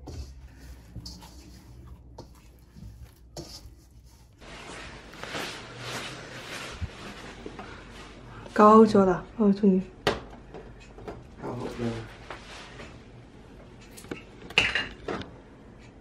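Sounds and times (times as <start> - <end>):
dough squishing against metal bowl: 0.0 - 4.6.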